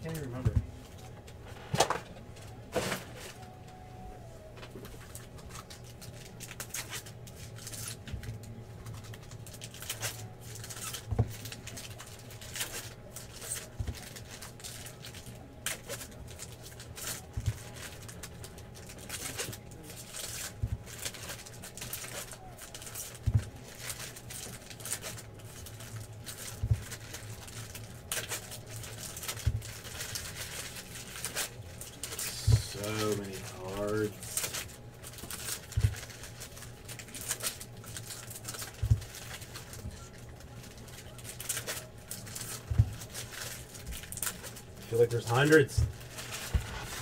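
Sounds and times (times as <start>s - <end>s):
plastic wrappers crinkling and tearing: 0.0s - 47.0s
cards rustling: 0.1s - 47.0s.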